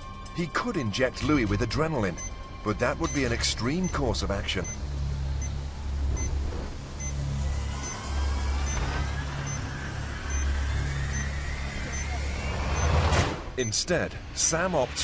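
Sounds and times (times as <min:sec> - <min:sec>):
patient monitor beeping: 0:03.0 - 0:04.8, 0:07.0 - 0:09.6, 0:10.3 - 0:13.0.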